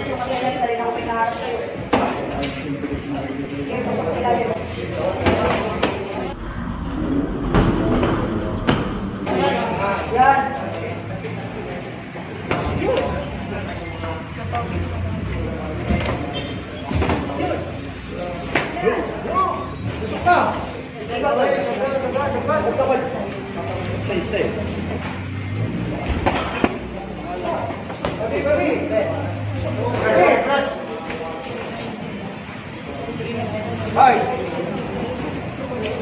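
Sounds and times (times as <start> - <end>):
voices calling out: 9.2 - 36.0.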